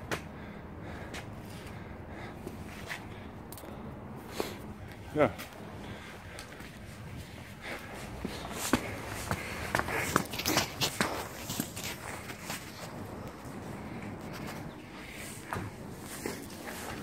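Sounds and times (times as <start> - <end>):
footsteps on brick paving: 4.4 - 17.0.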